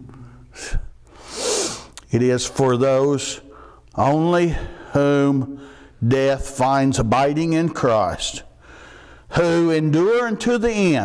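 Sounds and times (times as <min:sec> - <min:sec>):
man's sharp intake of breath: 0:00.2 - 0:02.0, 0:03.5 - 0:03.9, 0:05.6 - 0:06.0, 0:08.6 - 0:09.3.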